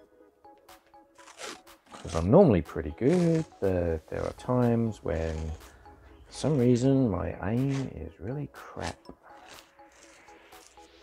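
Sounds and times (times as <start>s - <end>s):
faint backing music: 0.0s - 11.0s
masking tape crackling: 0.6s - 8.2s, 8.8s - 11.0s.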